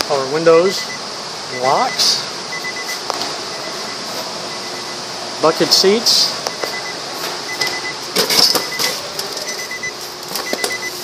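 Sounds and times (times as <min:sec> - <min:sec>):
short high electronic beeps: 0:00.8 - 0:05.0, 0:06.5 - 0:08.0.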